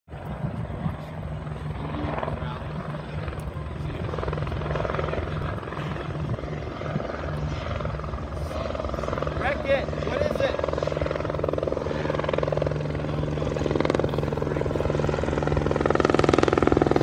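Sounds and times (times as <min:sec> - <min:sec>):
distant helicopter rotor beat: 0:00.1 - 0:17.0.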